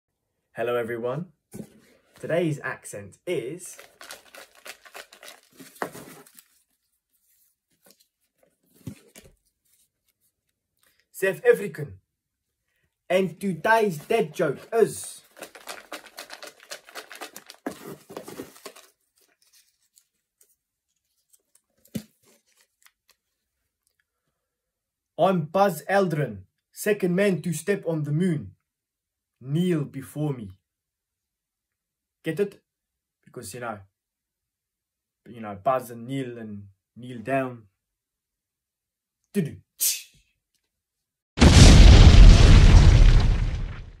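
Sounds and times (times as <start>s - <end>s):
contents rattling in cardboard box: 3.8s - 6.6s, 15.2s - 19.0s
deep rumbling explosion: 41.4s - 44.0s.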